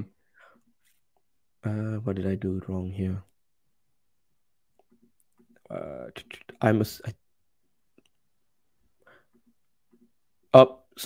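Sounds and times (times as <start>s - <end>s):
person speaking: 1.6s - 3.4s, 4.8s - 7.3s.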